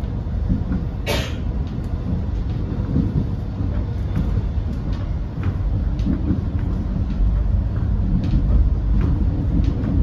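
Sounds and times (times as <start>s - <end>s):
electric train rumbling on tracks: 0.0s - 10.0s
wheels clicking over rail joints: 0.0s - 10.0s.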